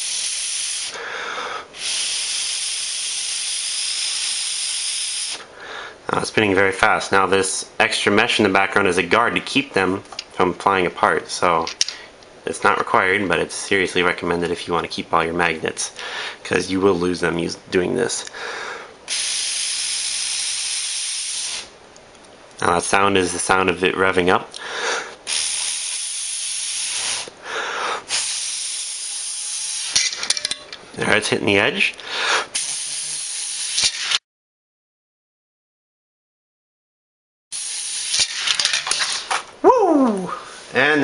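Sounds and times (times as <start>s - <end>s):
breath blown through straw: 0.0s - 5.5s, 25.0s - 29.2s
magnet balls clattering on glass: 38.1s - 39.4s.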